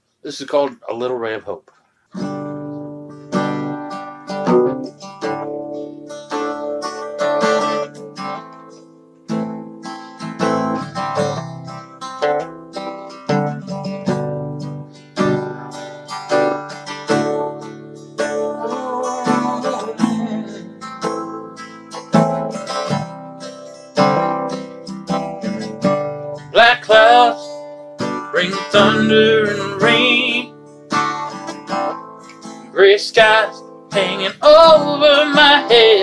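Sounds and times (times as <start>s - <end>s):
acoustic guitar strumming chords: 2.1s - 36.0s.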